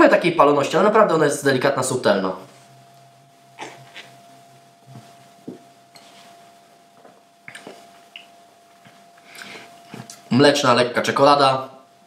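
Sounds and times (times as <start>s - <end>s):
faint steady hum: 0.0s - 12.0s
man sipping and swallowing: 3.6s - 4.2s, 7.0s - 10.2s.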